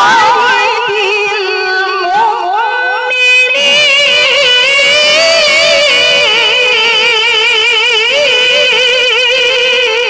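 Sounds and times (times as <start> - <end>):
woman chanting into microphone: 0.0 - 9.9.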